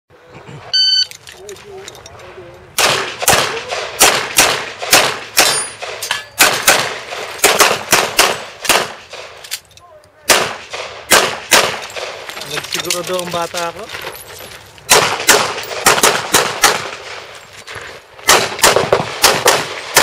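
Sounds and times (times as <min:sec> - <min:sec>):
handgun shots: 0:02.8 - 0:09.6, 0:10.3 - 0:12.2.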